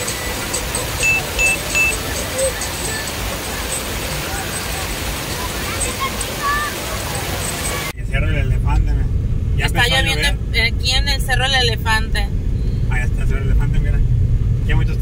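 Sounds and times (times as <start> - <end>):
short high beeps: 0.0 - 6.4
crowd shouting and chatting: 0.0 - 7.9
water rushing over spillway: 0.0 - 8.0
car engine rumble: 0.0 - 15.0
road noise inside car: 0.0 - 15.0.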